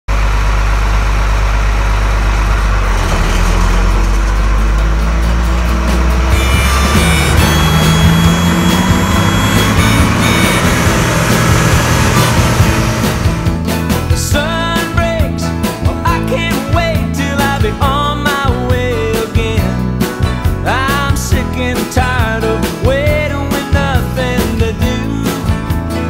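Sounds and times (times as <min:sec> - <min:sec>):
combine harvester droning: 0:00.1 - 0:19.6
music: 0:03.8 - 0:26.0.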